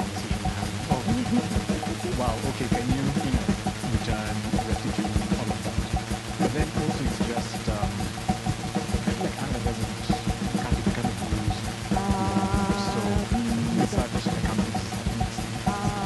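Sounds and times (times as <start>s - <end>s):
synthesizer music: 0.0s - 16.0s.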